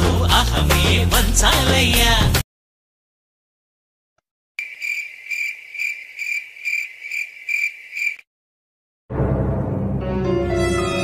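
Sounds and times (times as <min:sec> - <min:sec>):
cricket chirping: 0:04.6 - 0:08.2.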